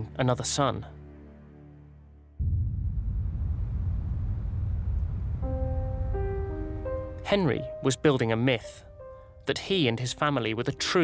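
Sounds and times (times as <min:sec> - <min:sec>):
low wind rumble: 0:02.4 - 0:07.2.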